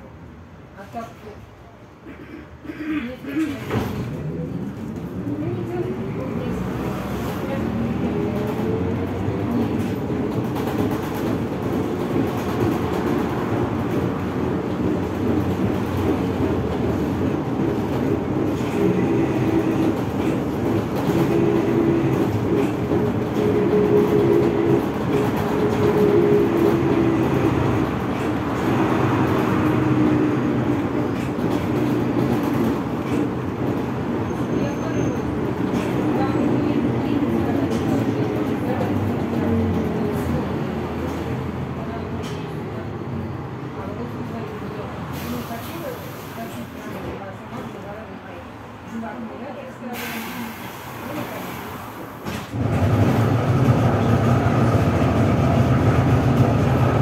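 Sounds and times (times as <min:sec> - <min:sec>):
road rumble: 0:01.8 - 0:49.1.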